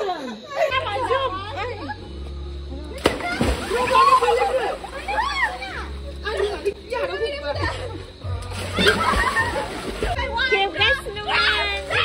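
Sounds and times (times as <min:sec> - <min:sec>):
voices calling out: 0:00.0 - 0:12.0
water splashing in a pool: 0:03.0 - 0:06.7, 0:08.4 - 0:10.3.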